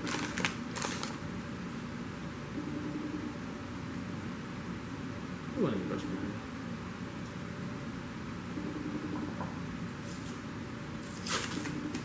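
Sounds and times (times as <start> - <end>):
room noise hiss and hum: 0.0 - 12.0.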